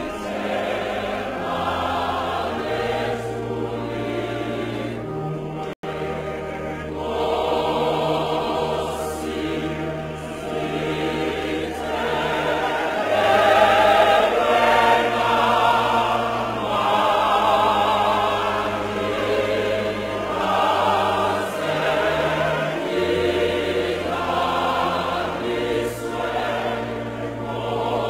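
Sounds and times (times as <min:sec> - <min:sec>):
choir singing low held notes: 0:00.0 - 0:28.0.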